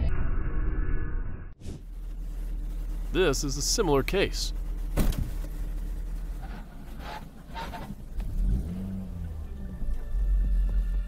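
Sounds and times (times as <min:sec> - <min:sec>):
car engine rumble: 0:01.8 - 0:11.0
road noise: 0:01.8 - 0:11.0.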